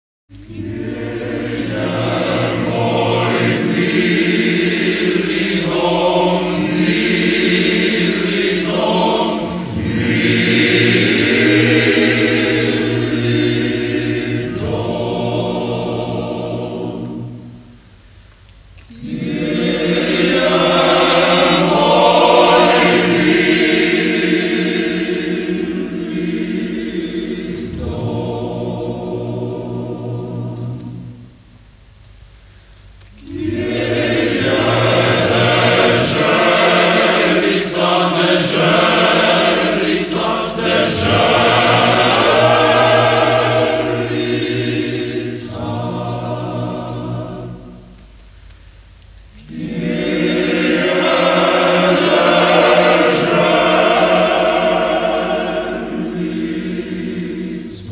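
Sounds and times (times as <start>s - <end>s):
male choir singing: 0.4s - 17.8s, 18.9s - 31.3s, 33.2s - 48.0s, 49.4s - 57.9s.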